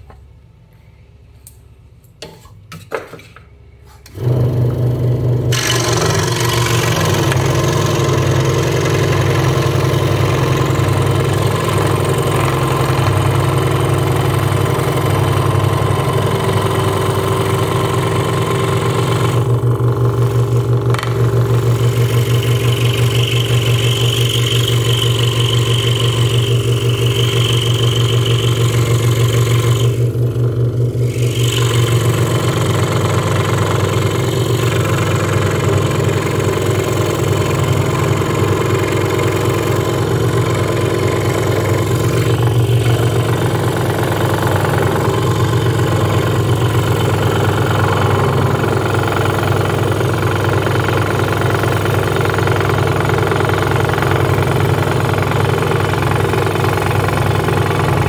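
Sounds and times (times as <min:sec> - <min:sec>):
high whine from saw cut: 0:04.2 - 0:58.0
scroll saw cutting wood: 0:05.5 - 0:30.2, 0:30.9 - 0:58.0.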